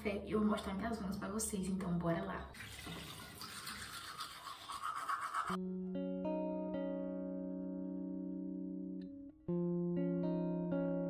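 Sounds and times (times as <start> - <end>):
toothbrush scrubbing teeth: 2.6 - 5.6
plucked guitar music: 5.6 - 11.0.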